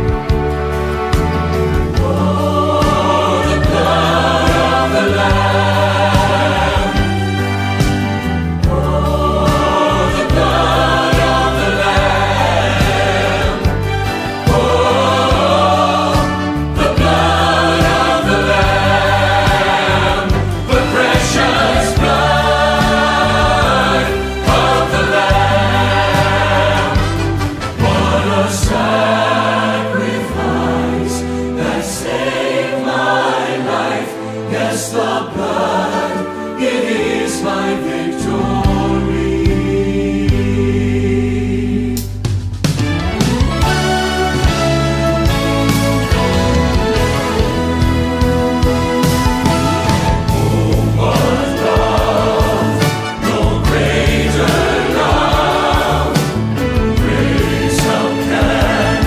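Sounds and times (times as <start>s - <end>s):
church choir singing: 0.0s - 42.2s, 43.6s - 59.0s
instrumental accompaniment: 0.0s - 59.0s.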